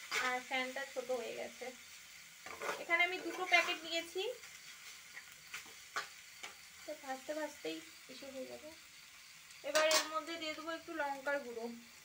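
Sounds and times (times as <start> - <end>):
spatula scraping frying pan: 0.0 - 0.5, 2.4 - 4.1, 9.7 - 10.3
faint sizzle: 0.0 - 12.0.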